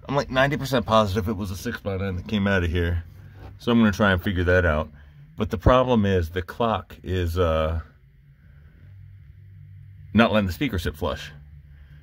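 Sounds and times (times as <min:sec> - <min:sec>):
faint low background hum: 0:00.0 - 0:12.0.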